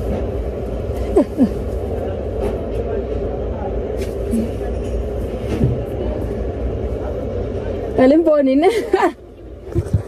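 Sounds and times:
faint indistinct voices: 1.0s - 8.4s.

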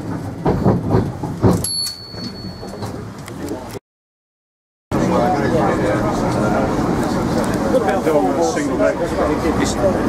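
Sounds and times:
bus engine and road rumble: 0.0s - 3.8s, 5.0s - 10.0s.

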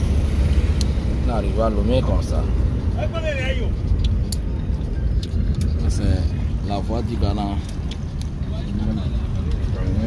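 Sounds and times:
car driving low rumble: 0.0s - 10.0s.

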